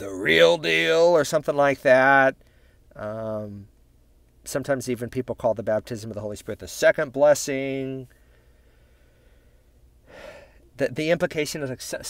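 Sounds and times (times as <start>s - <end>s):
man gasping: 8.3s - 10.7s.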